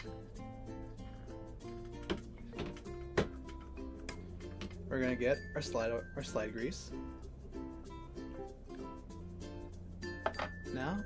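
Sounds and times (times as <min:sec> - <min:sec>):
plucked string music: 0:00.0 - 0:11.0.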